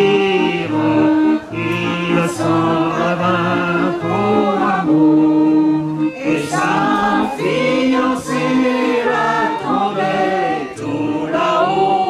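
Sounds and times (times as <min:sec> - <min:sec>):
group of people singing: 0:00.0 - 0:12.0.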